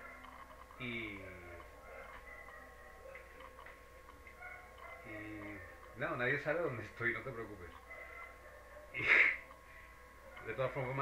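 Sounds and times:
electrical hum with high whine: 0:00.0 - 0:11.0.

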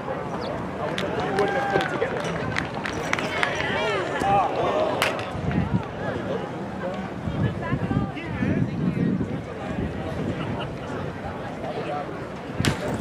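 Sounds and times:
outdoor crowd noise: 0:00.0 - 0:13.0
people talking at once: 0:00.0 - 0:13.0.

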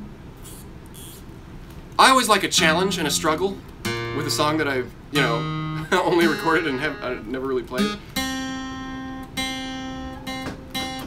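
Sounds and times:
guitar string ringing: 0:02.6 - 0:11.0.

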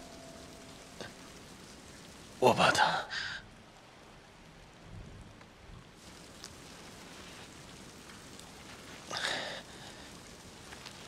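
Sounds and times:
faint rain-like hiss: 0:00.0 - 0:11.0.

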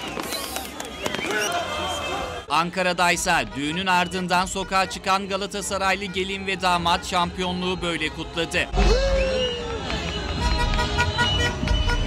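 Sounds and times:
car horns honking: 0:03.1 - 0:08.4, 0:10.2 - 0:12.0.

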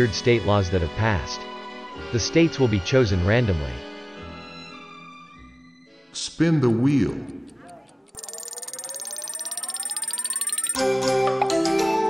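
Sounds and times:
spinning wheel ticking: 0:06.7 - 0:10.8
rising tone: 0:08.2 - 0:10.8.

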